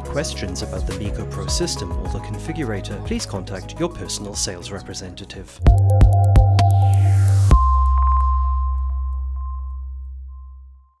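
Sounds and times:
deep bass tone: 5.6 - 11.0.

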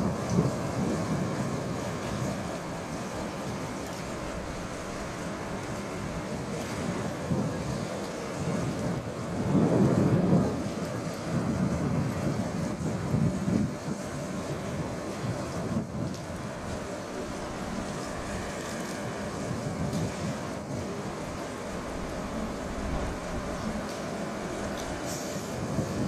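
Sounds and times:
locomotive engine rumbling: 0.0 - 26.0
wind buffeting microphone: 0.0 - 26.0.

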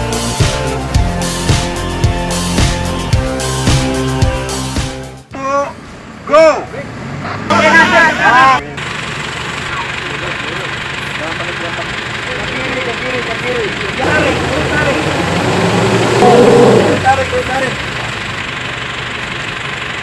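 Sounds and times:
people talking and calling out: 5.3 - 18.3
vehicle engine running: 7.0 - 20.0.

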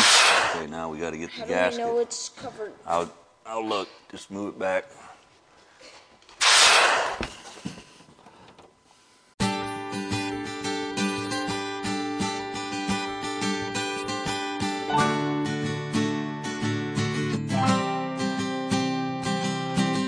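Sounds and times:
acoustic guitar music: 9.4 - 20.0.

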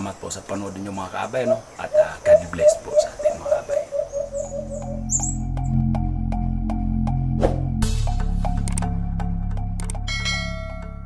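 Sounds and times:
steady ticking beat: 1.4 - 7.2
low sustained drone: 2.2 - 7.0.

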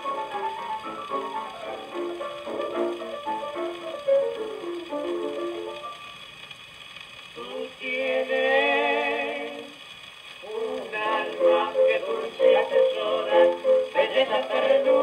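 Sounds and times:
old gramophone tango music: 0.0 - 6.4, 7.4 - 15.0
vocal trio singing: 7.4 - 9.8, 10.4 - 15.0.

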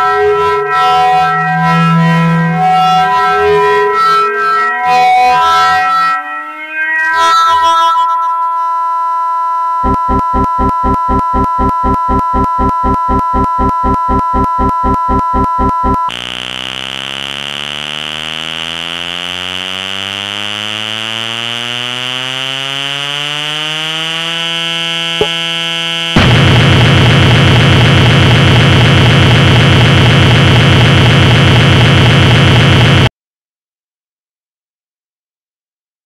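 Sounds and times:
loud harsh buzz: 0.0 - 8.6, 9.8 - 33.1
electronic tones gliding upward: 0.0 - 8.8, 9.8 - 26.2.

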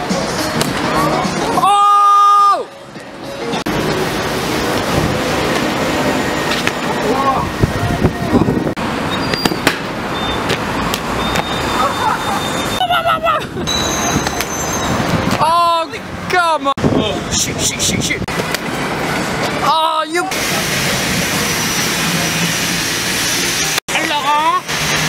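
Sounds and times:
city street noise: 0.0 - 25.0.

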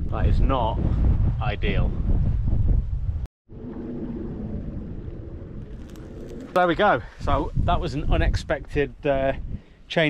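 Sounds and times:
wind buffeting microphone: 0.0 - 9.9
steady wind noise: 0.0 - 10.0.

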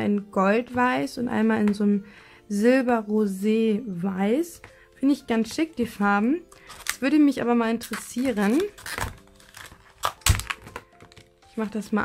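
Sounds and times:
quiet background music: 0.0 - 12.0
plastic packaging crackling: 6.5 - 11.4.

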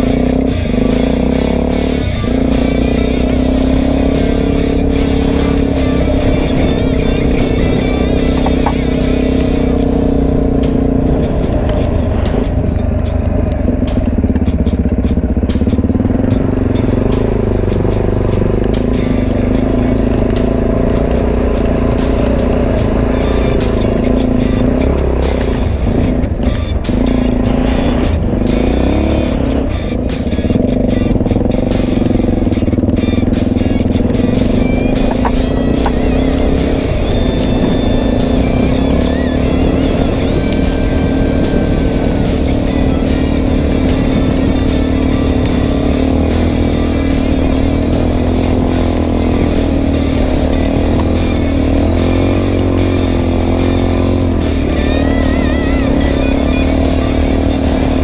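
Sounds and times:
background music: 0.0 - 58.0
dirt bike engine running: 0.0 - 58.0.

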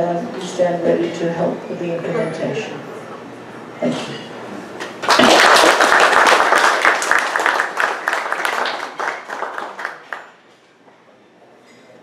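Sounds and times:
roomful of people applauding: 4.8 - 10.4.

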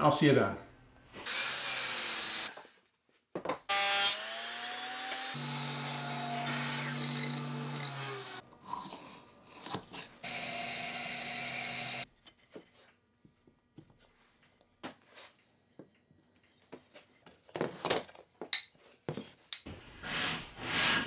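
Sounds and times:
table saw cutting: 1.2 - 2.6, 3.7 - 8.4, 9.8 - 12.1
miter saw cut: 1.3 - 2.6, 3.7 - 8.4, 10.2 - 12.0
saw motor whine and hum: 3.7 - 8.4, 10.2 - 12.0.

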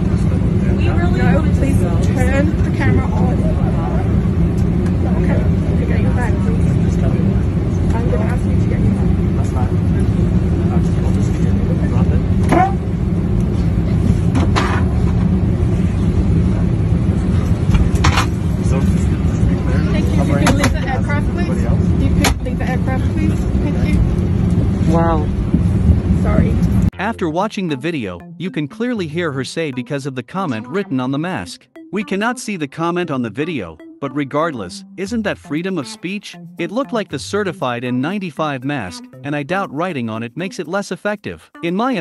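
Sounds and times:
airliner cabin rumble: 0.0 - 27.0
indistinct voices: 26.1 - 42.0.

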